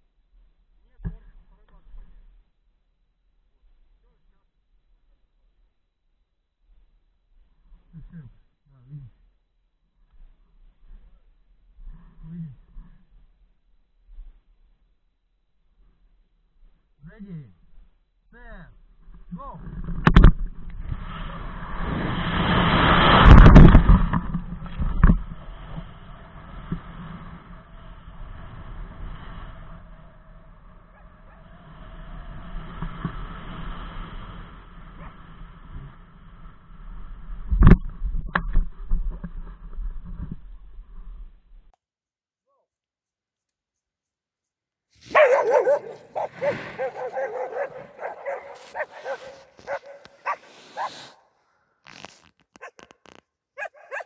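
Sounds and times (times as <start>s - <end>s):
wind rushing over microphone: 19.6s - 41.0s
sharp cracks: 19.9s - 25.8s, 45.1s - 50.3s
dog barking and yipping: 45.0s - 51.0s, 53.6s - 54.0s.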